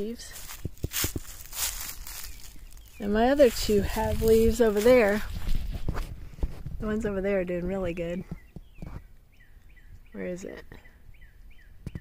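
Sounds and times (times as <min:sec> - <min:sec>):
footsteps on dry grass: 0:00.0 - 0:08.1.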